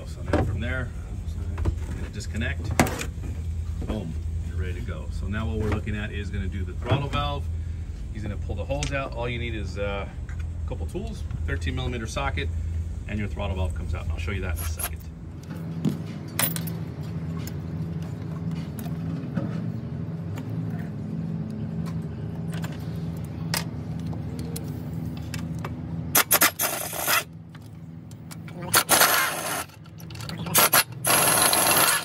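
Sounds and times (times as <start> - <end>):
steady low hum: 0.0 - 32.0
impact wrench bursts: 26.1 - 27.4, 28.7 - 32.0.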